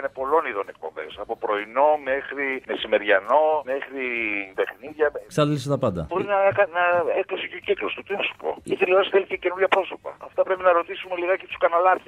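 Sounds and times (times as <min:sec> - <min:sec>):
person talking: 0:05.3 - 0:07.2.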